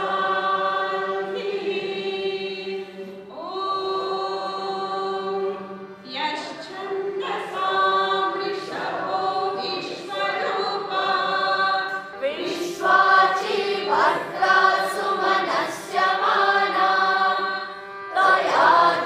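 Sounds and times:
congregation singing a chant: 0.0s - 19.0s.

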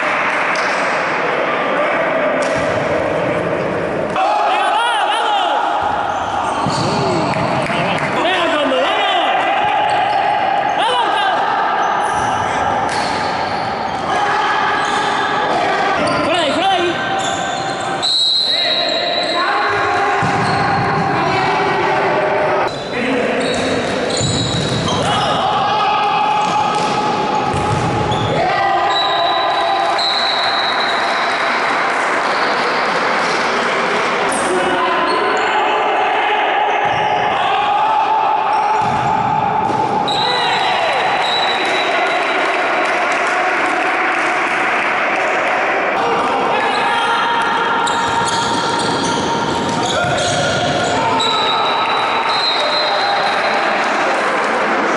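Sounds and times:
players shouting: 1.4s - 22.7s, 23.4s - 33.1s, 33.9s - 54.9s
ball struck and bouncing: 26.4s - 28.2s, 38.8s - 40.0s.

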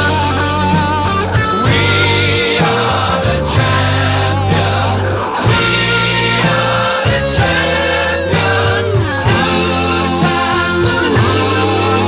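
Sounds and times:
song with singing and beat: 1.4s - 12.0s.

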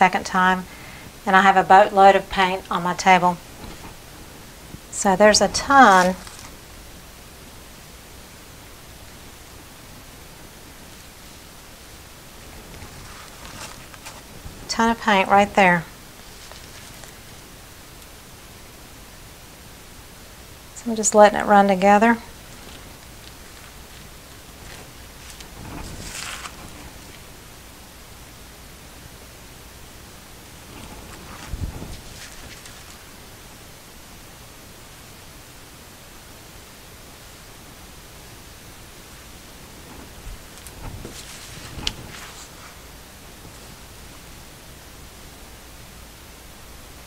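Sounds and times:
low room tone hiss: 0.0s - 47.0s
gloved hands rustling sheet: 3.2s - 6.7s, 10.8s - 15.3s, 16.1s - 17.6s, 22.3s - 27.5s, 30.4s - 33.4s, 39.6s - 44.6s.

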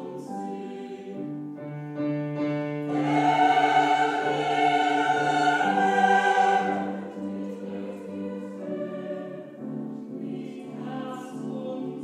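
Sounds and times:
soprano singing: 0.0s - 1.8s, 2.4s - 12.0s
grand piano accompaniment: 0.0s - 12.0s.

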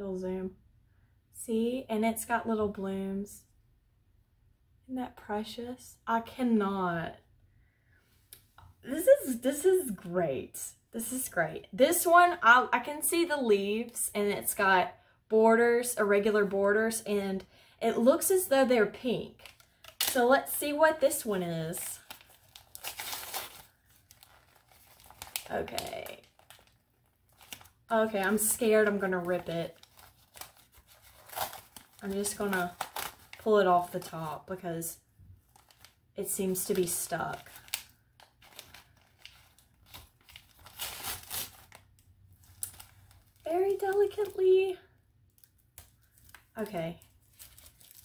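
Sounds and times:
paper crinkling and rustling: 21.7s - 34.4s, 35.4s - 44.4s, 45.3s - 48.0s.

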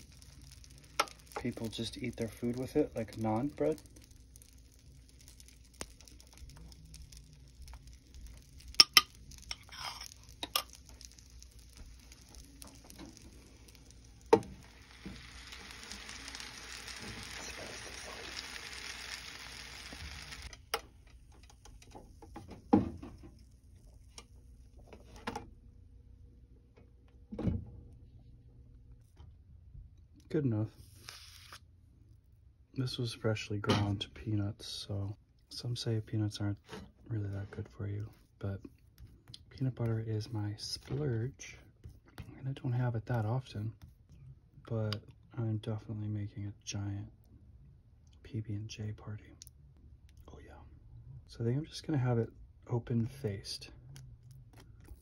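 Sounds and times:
batter sizzling on a grill: 0.0s - 25.3s, 30.8s - 31.7s, 32.8s - 45.6s.

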